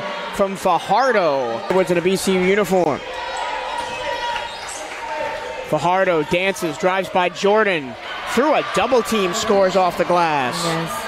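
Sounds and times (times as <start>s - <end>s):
gym background noise: 0.4s - 11.0s.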